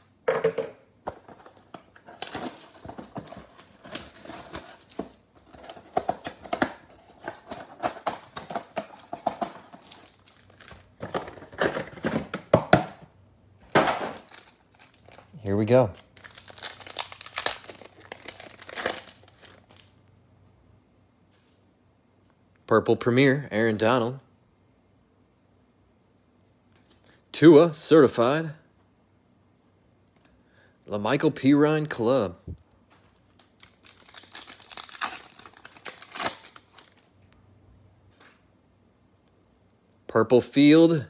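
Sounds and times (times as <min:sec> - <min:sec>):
plastic and foil packs crinkling: 0:01.1 - 0:12.4, 0:13.8 - 0:20.0, 0:32.9 - 0:37.2.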